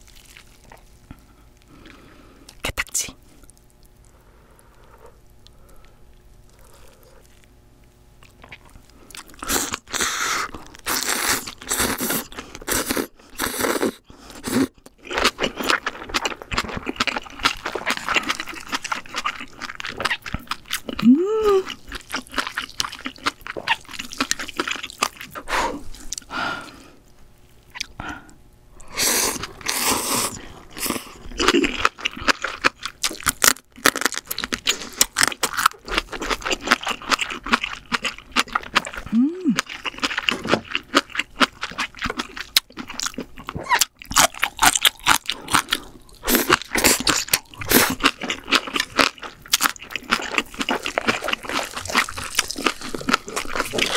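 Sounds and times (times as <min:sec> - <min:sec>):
noodles slurped and chewed: 0:08.2 - 0:26.3, 0:28.9 - 0:53.9
person humming mm: 0:21.0 - 0:21.8, 0:39.0 - 0:39.7.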